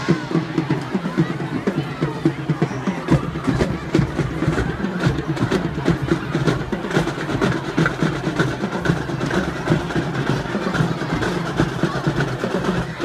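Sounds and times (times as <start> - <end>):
drumline drum strokes: 0.0 - 13.0
marching band playing: 0.0 - 13.0.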